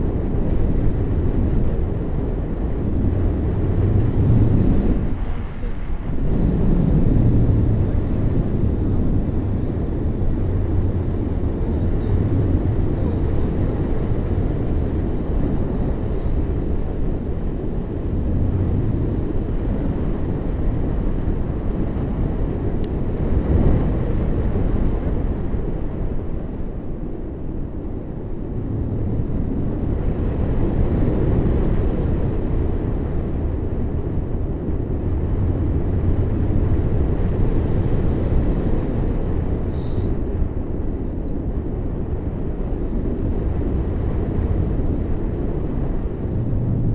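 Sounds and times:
wind buffeting microphone: 0.0s - 46.9s.

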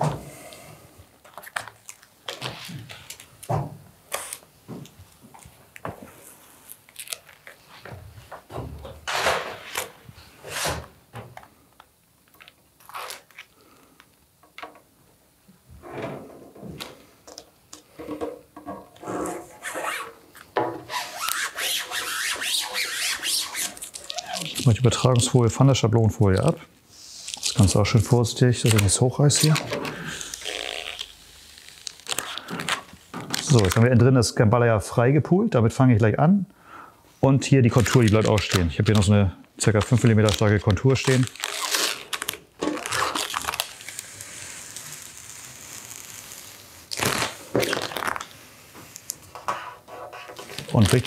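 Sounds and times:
rubbing and scraping of film: 18.9s - 20.2s, 20.8s - 25.0s, 39.7s - 51.0s.

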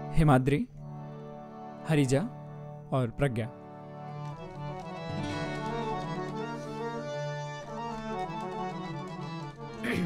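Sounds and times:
harmonium playing: 0.0s - 10.0s.

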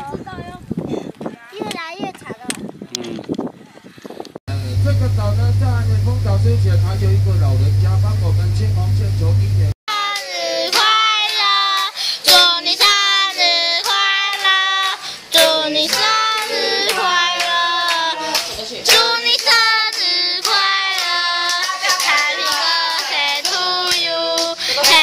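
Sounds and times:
group singing: 9.9s - 25.0s
hand clapping: 13.3s - 25.0s.

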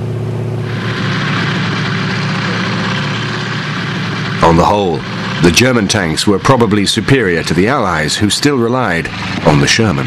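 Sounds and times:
military vehicle engines humming: 0.0s - 10.0s
steady rushing noise: 0.0s - 10.0s.

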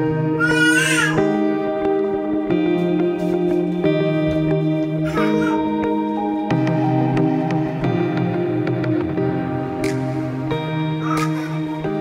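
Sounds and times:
plucked-string music with beat: 0.0s - 12.0s
baby crying: 0.3s - 1.4s, 4.9s - 6.0s, 10.8s - 12.0s.

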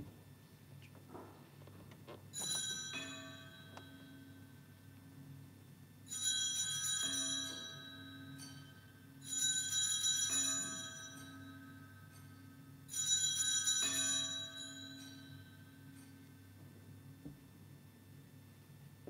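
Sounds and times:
altar bells ringing: 2.4s - 4.8s, 6.1s - 16.6s
lower bell tone: 2.4s - 5.4s, 6.1s - 16.6s.

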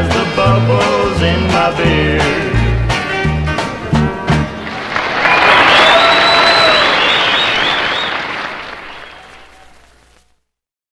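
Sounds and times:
audience applauding: 4.5s - 10.3s.

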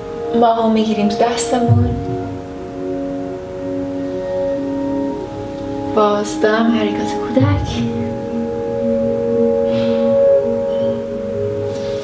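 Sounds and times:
calm music of ringing tones: 0.0s - 12.0s.

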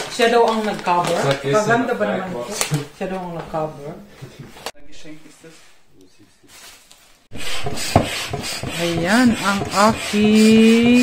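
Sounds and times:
hand air pump strokes: 7.3s - 11.0s.

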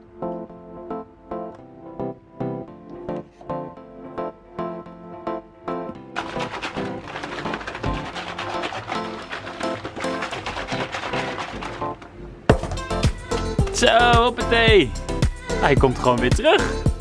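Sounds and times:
rhythmic keyboard music: 0.0s - 17.0s.

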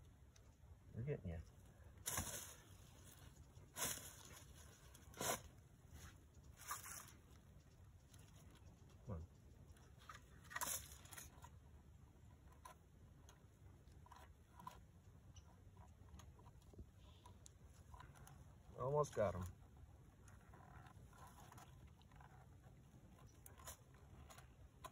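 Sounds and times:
rustles and crunches of dry leaves: 1.8s - 8.7s, 9.8s - 11.5s.

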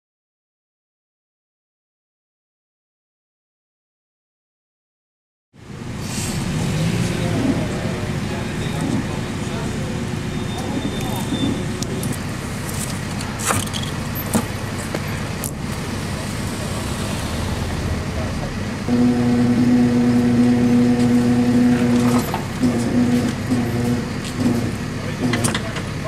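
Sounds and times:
vehicle engine running: 5.6s - 26.0s
people talking indistinctly: 6.8s - 18.9s.

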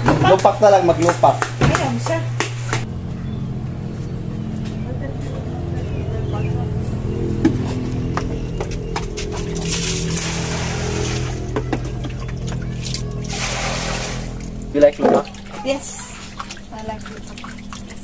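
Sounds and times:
water pouring and splashing: 8.6s - 18.0s.

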